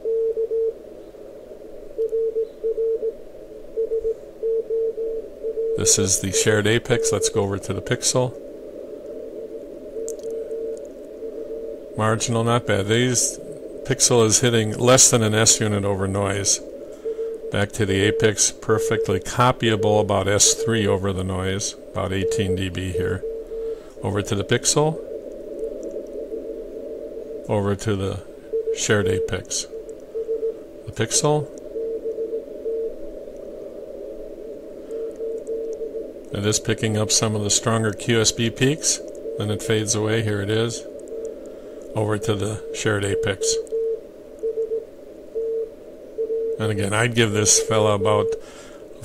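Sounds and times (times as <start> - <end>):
morse code tone: 0.0 - 0.8, 2.0 - 3.2, 3.8 - 7.7, 14.1 - 21.4, 22.0 - 23.4, 28.5 - 33.0, 42.0 - 48.4
shortwave receiver noise: 0.0 - 49.0
steady radio static hiss: 0.0 - 49.0.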